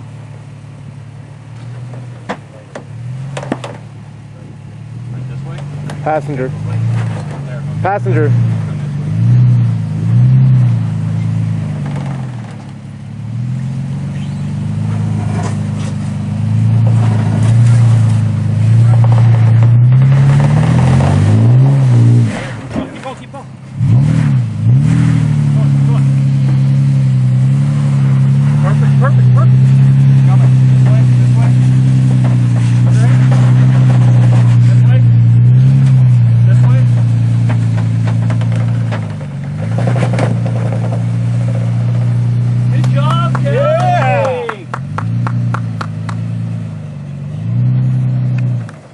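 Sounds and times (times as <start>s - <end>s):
truck engine revving: 0.0s - 48.9s.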